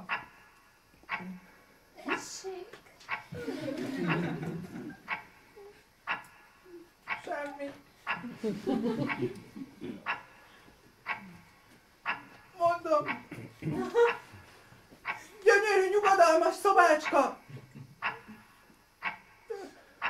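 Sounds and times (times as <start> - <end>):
sharp clicks: 6.1 - 6.4
man whimpering and moaning: 19.5 - 19.8.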